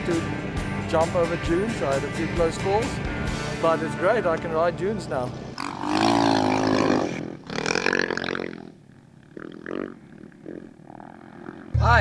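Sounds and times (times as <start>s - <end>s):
motorcycle engines revving: 0.0s - 12.0s.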